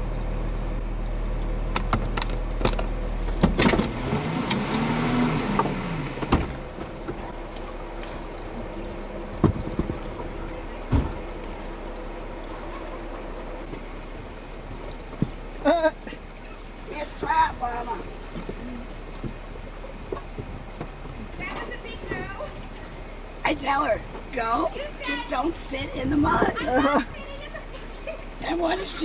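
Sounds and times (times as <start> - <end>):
car engine idling: 0.0 - 29.0
sharp knocks and clunks: 1.7 - 4.0, 9.4 - 10.3, 10.9 - 11.2.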